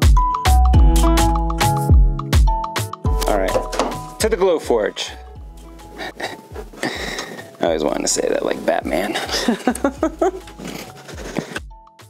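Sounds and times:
music: 0.0 - 12.0
laughter: 9.2 - 11.6.

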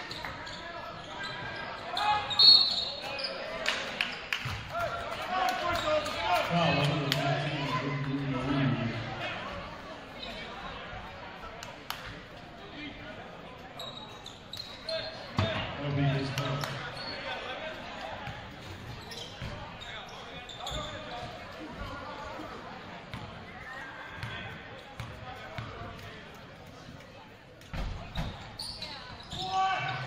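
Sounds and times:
murmur of voices echoing: 0.0 - 30.0.

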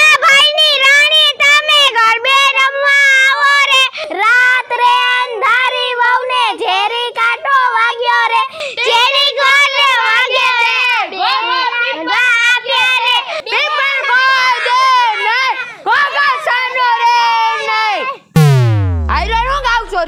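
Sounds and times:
child singing unaccompanied: 0.0 - 14.7.

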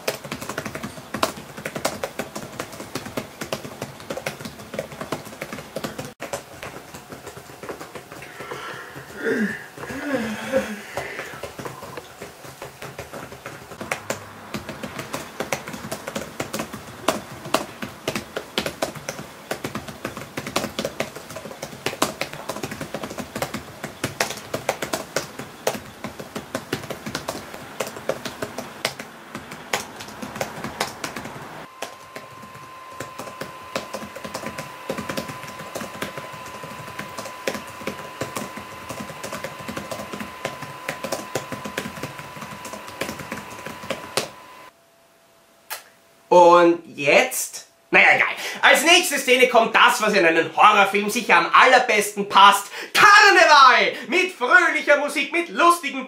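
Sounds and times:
laptop keyboard typing: 0.0 - 44.7.

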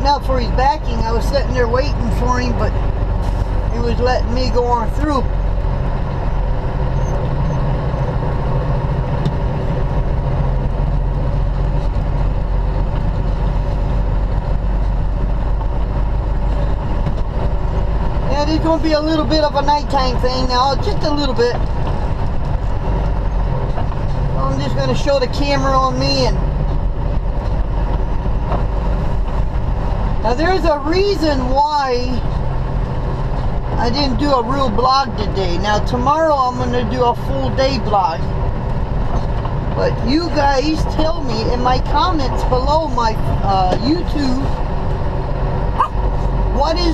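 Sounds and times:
diesel truck engine drone: 0.0 - 46.9.

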